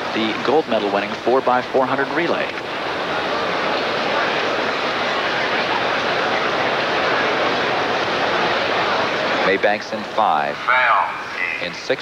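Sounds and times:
stadium crowd hubbub: 0.0s - 12.0s.

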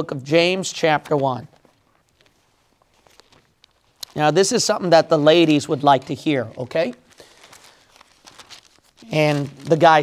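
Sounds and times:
pages rustling: 0.8s - 10.0s.

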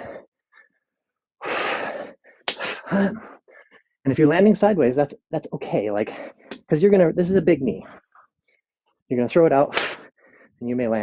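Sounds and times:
man's forceful breath out: 0.0s - 0.7s, 1.4s - 3.8s.

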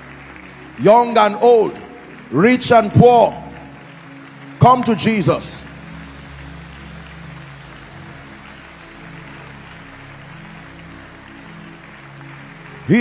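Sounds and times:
crowd and room noise: 0.0s - 13.0s
soft church music with low chords: 0.0s - 13.0s.

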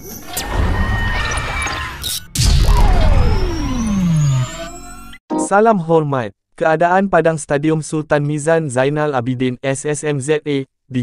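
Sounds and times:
faint high tone rising: 0.0s - 5.5s
tone sweeping downward: 0.4s - 5.5s.

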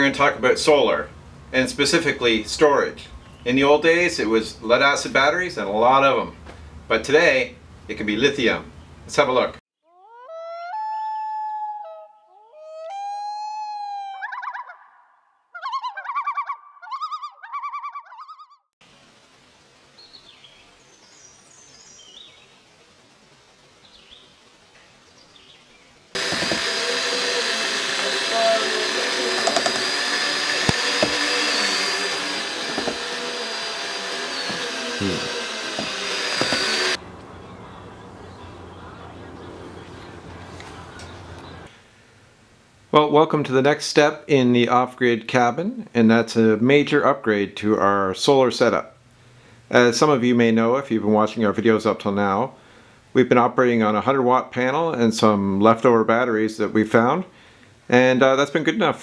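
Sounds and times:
birds chirping: 19.9s - 22.7s, 23.8s - 26.2s, 30.9s - 41.7s
held tones: 26.2s - 37.6s
loud steady noise: 26.2s - 41.7s.

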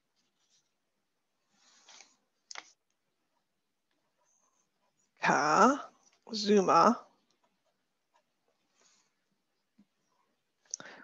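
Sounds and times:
paper rustling: 1.4s - 3.0s.

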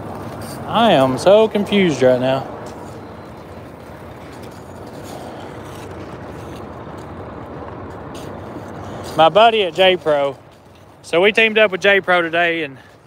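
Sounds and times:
vehicle engine rumbling: 0.0s - 13.0s.

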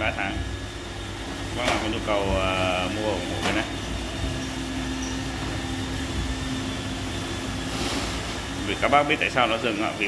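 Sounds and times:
robot vacuum humming: 0.0s - 10.0s.

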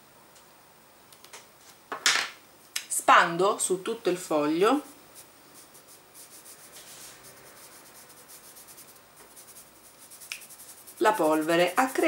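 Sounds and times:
fingertips brushing on paper: 5.1s - 12.0s.

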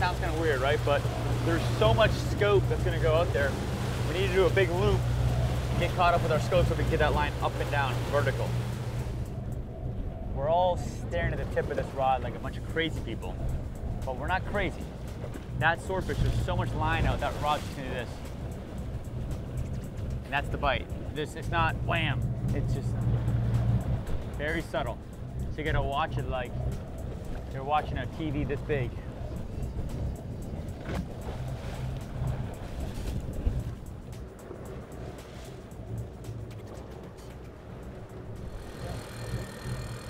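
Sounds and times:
background music: 0.0s - 40.0s
boat engines running: 0.0s - 40.0s
water washing along hull: 0.0s - 40.0s.

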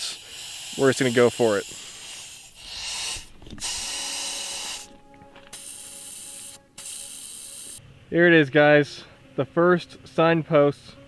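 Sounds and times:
air hissing from tire valve: 0.0s - 7.8s.

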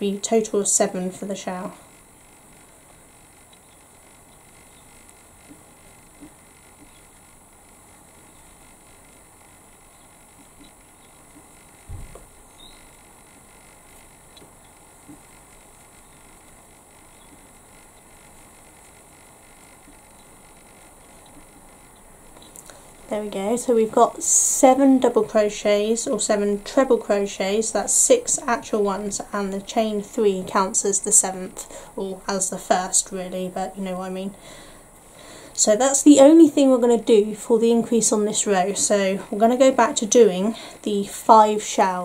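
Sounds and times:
crochet hook ticks and rustles: 10.2s - 22.8s
low dull thump: 11.9s - 12.3s.

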